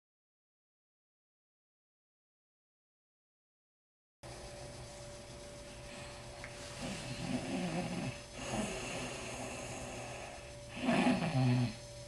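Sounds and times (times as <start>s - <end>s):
person snoring: 6.8s - 11.8s.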